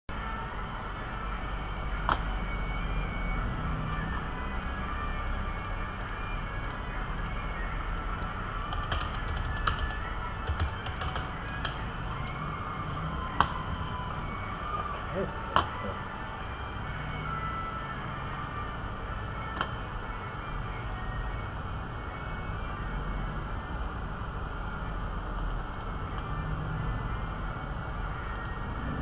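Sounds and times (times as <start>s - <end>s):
computer keyboard keys clicking: 4.5s - 11.8s.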